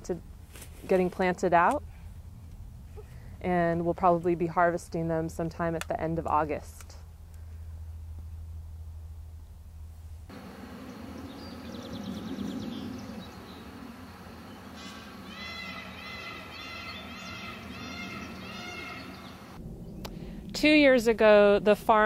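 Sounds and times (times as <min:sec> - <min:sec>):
repeated rising-and-falling bird calls: 0:10.8 - 0:20.0
faint high bird trill: 0:14.4 - 0:20.0
low rumble: 0:17.6 - 0:22.0.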